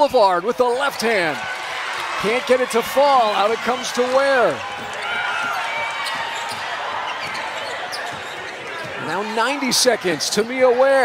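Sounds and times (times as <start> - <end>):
murmur of arena crowd: 0.0 - 11.0.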